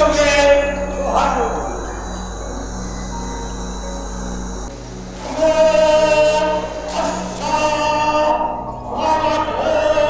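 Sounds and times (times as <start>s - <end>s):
singing over a sound system: 0.0s - 3.4s, 5.1s - 10.0s
steady background sound: 0.7s - 7.4s.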